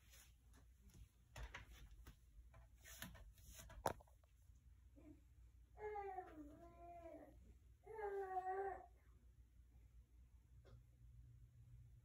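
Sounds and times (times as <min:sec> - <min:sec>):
infant whining: 0:05.8 - 0:09.0.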